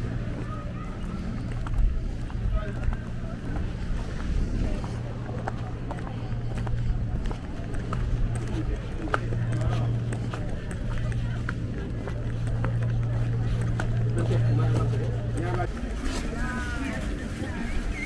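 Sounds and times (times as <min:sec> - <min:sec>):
indistinct voices: 0:00.0 - 0:18.0.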